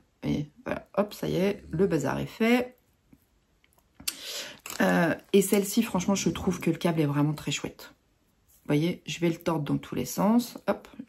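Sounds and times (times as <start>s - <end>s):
cable rustling: 4.4s - 6.7s.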